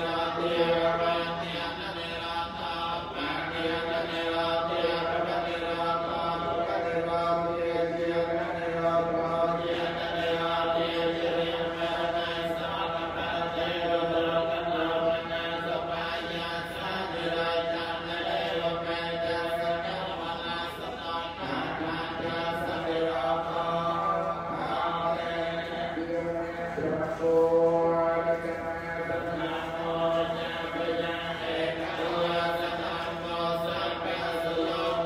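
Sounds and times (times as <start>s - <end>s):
monks chanting in unison: 0.0s - 35.0s.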